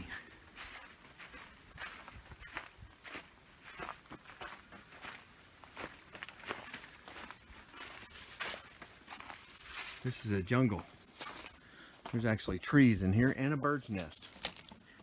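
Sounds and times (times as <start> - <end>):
footsteps crunching through dry leaves: 0.0 - 12.5, 13.1 - 15.0.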